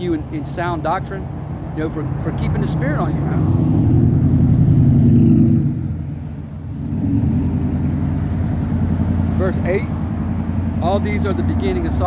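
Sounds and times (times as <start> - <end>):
vehicle engine running: 1.5 - 12.0.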